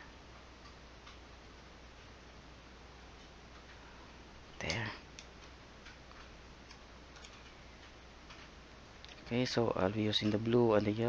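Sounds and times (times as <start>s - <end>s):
low background hum: 0.0s - 11.0s
small clicks and ticks: 4.6s - 9.4s.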